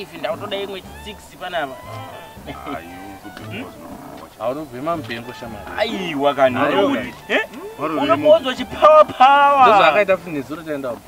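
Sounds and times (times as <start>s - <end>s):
background music: 0.0s - 11.0s
man talking: 0.0s - 11.0s.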